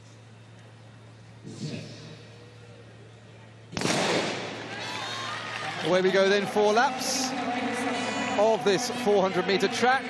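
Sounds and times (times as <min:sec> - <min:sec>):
starting gun firing: 0:03.8 - 0:04.6.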